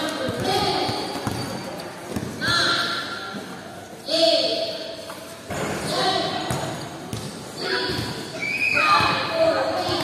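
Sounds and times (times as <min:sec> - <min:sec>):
basketball bouncing on court: 0:00.2 - 0:02.8, 0:06.5 - 0:08.2.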